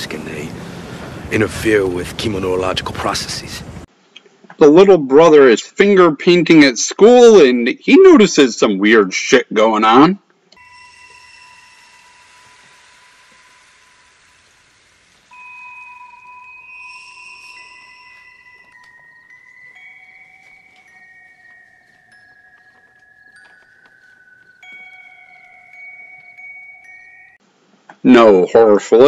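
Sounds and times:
eerie sustained high tones: 0:00.0 - 0:03.9, 0:10.6 - 0:27.4
soft airy hiss: 0:10.6 - 0:28.8.

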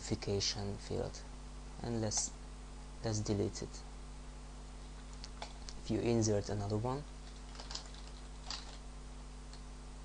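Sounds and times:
steady low hum: 0:00.0 - 0:10.0
keyboard and mouse clicks: 0:07.2 - 0:08.8.

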